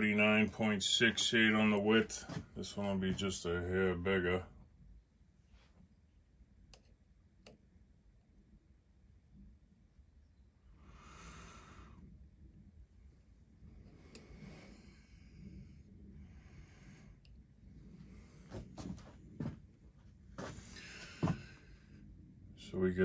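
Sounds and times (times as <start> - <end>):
breathing through the nose: 10.8 - 12.1, 20.5 - 21.9.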